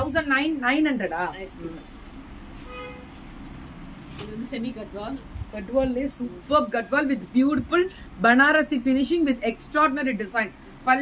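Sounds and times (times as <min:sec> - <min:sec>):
low steady background noise: 0:00.0 - 0:11.0
short horn-like toot: 0:02.6 - 0:03.2.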